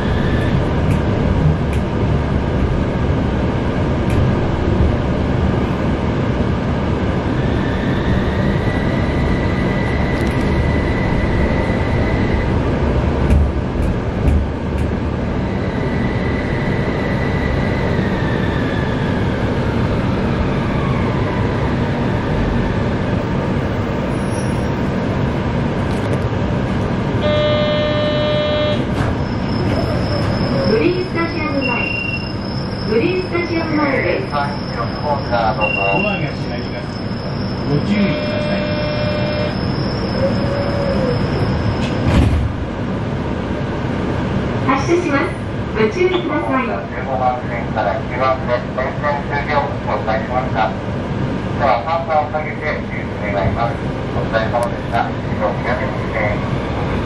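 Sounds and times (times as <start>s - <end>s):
tram wheels and motors rumbling: 0.0s - 57.0s
onboard voice announcement: 30.6s - 32.2s, 32.9s - 37.0s, 37.7s - 39.5s, 44.7s - 50.8s, 51.6s - 56.5s
electronic beep: 31.5s - 32.4s, 35.4s - 36.4s
high motor whine: 34.4s - 40.3s.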